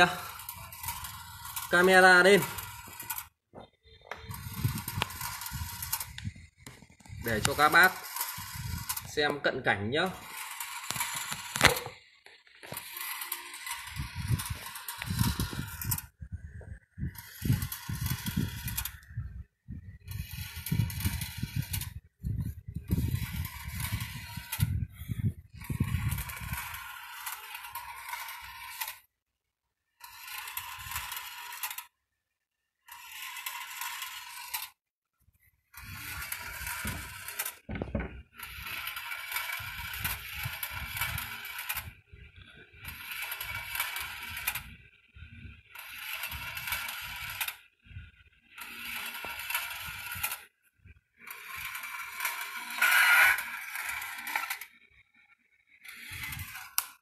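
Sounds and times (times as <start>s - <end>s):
small motor turning: 0.0s - 3.4s, 4.1s - 29.1s, 29.9s - 32.0s, 32.8s - 34.8s, 35.6s - 57.0s.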